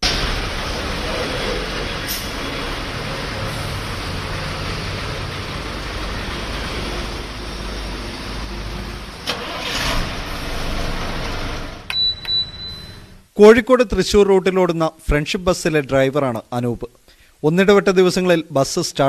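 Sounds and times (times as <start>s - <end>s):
diesel bus engine idling: 0.0s - 11.9s.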